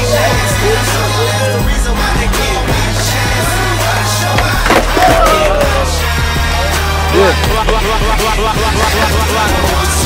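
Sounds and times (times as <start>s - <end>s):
music with steady bass line: 0.0s - 10.0s
skateboard clacking on concrete: 2.8s - 5.8s, 7.3s - 10.0s.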